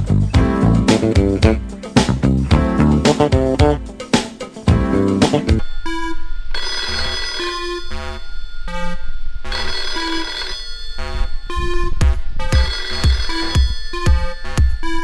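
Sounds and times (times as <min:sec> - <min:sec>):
music with steady beat: 0:00.0 - 0:05.6, 0:11.5 - 0:15.0
telephone ringing: 0:05.6 - 0:15.0.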